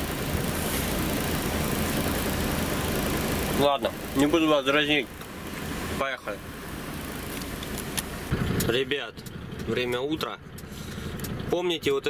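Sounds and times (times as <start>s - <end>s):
even hiss: 0.0s - 8.6s
diesel engine drone: 0.0s - 12.0s
road rumble: 0.0s - 12.0s.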